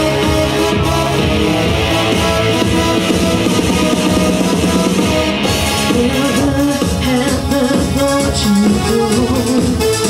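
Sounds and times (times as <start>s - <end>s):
guitar: 0.0s - 10.0s
steady drum beat: 0.0s - 10.0s.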